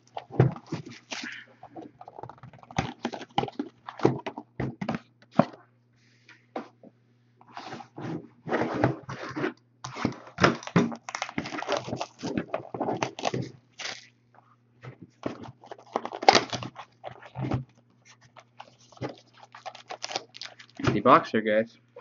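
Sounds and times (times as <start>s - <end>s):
plastic wrap crinkling: 9.9s - 14.2s, 15.2s - 21.1s.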